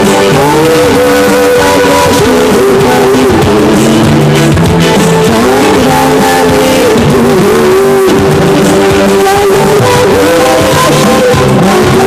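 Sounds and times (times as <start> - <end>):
loud music with held notes: 0.0 - 12.0.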